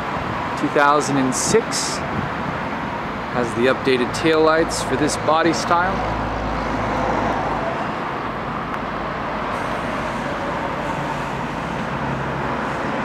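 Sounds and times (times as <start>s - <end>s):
outdoor traffic noise: 0.0s - 13.0s.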